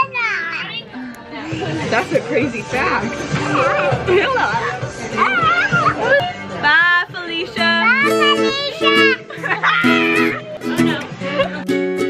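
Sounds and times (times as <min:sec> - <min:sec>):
young child speaking: 0:00.0 - 0:00.9, 0:07.6 - 0:10.4
adult voices: 0:00.0 - 0:11.8.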